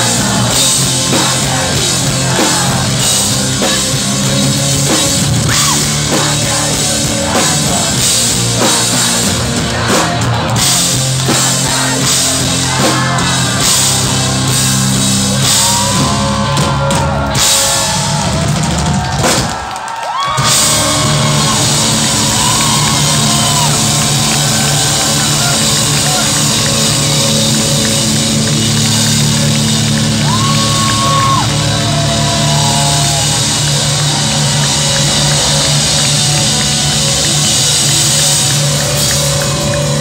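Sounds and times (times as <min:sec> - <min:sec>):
rock band playing live: 0:00.0 - 0:40.0.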